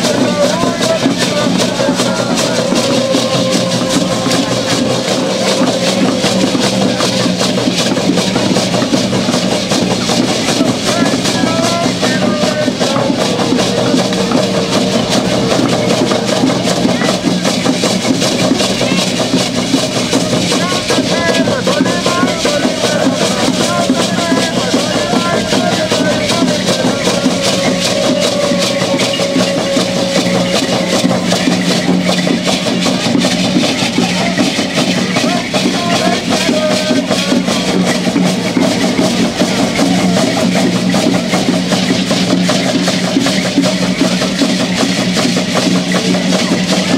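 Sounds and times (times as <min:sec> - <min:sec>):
hand drums beating: 0:00.0 - 0:46.9
rattles shaking: 0:00.0 - 0:46.9
steady voices: 0:00.0 - 0:46.9.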